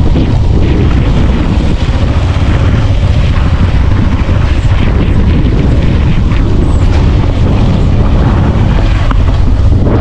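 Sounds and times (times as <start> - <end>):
motorcycle running: 0.0 - 10.0
wind buffeting microphone: 0.0 - 10.0.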